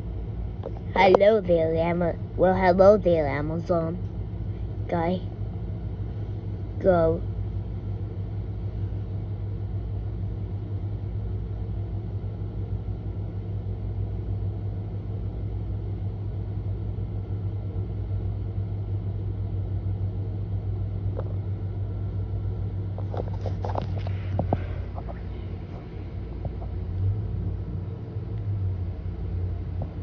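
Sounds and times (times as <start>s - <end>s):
low mechanical hum: 0.0s - 30.0s.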